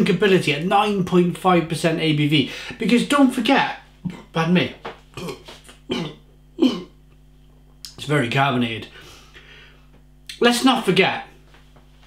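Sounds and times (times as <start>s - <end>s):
man coughing: 4.1s - 4.4s, 5.2s - 7.0s.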